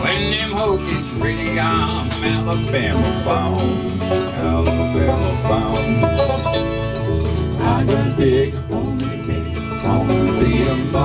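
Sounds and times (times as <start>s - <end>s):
acoustic guitar: 0.0s - 11.0s
banjo: 0.0s - 11.0s
mandolin: 0.0s - 11.0s.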